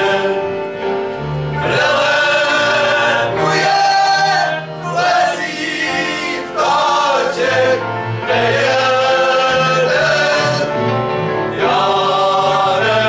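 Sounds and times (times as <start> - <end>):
men singing together: 0.0 - 0.7, 1.6 - 13.0.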